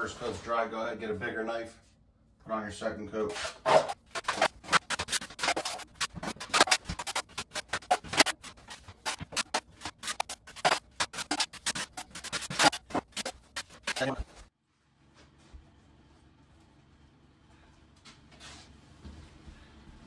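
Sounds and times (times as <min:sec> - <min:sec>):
drywall knife scraping spackle: 0:03.3 - 0:14.5.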